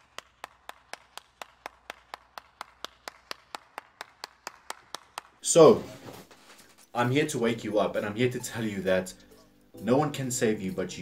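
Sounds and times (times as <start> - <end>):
person clapping hands: 0.0 - 5.4.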